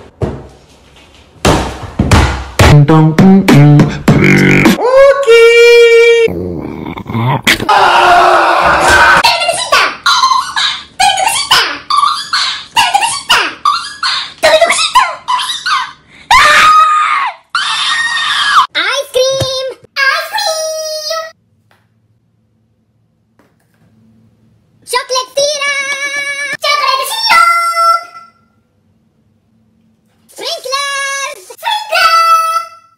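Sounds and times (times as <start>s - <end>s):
person screaming and shouting: 4.1s - 9.2s.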